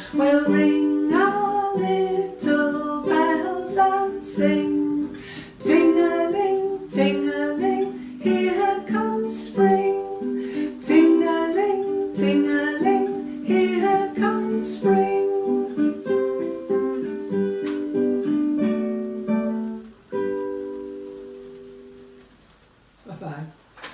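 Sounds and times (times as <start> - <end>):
woman singing wordlessly: 0.0 - 17.0
acoustic guitar playing: 0.0 - 23.0.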